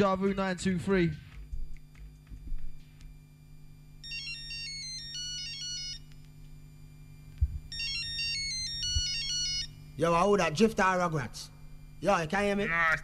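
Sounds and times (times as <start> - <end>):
steady low hum: 0.0 - 13.0
ringtone melody of high beeps: 4.0 - 6.1, 7.7 - 9.7.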